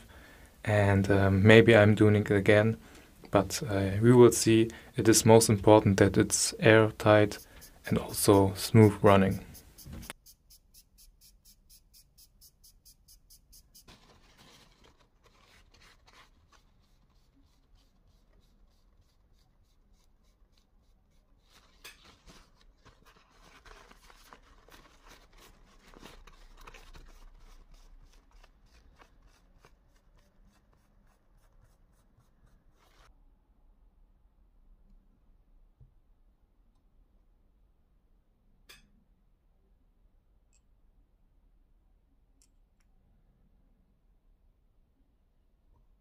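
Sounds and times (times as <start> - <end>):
paper towel rubbing: 7.0 - 33.1.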